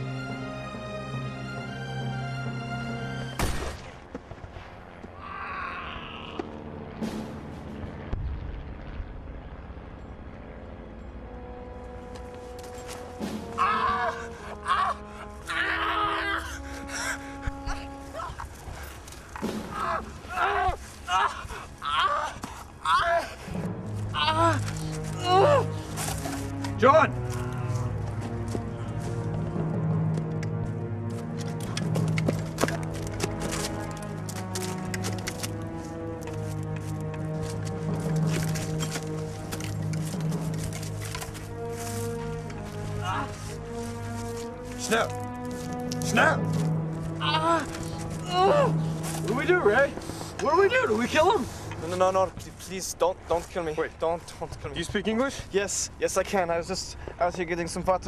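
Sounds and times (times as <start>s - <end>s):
film score music: 0.0s - 58.0s
steady low rumble: 3.4s - 13.6s
dry leaves and twigs crackling: 11.9s - 29.5s, 31.1s - 55.3s.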